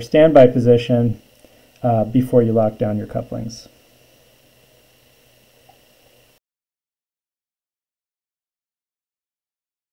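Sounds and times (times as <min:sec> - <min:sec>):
light hiss: 0:00.0 - 0:06.4
low steady hum: 0:00.0 - 0:06.4.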